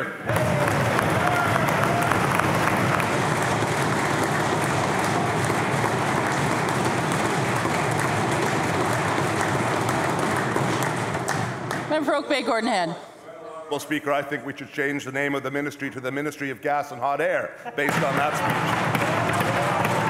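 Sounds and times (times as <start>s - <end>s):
crowd applauding: 0.2s - 11.9s, 17.9s - 20.0s.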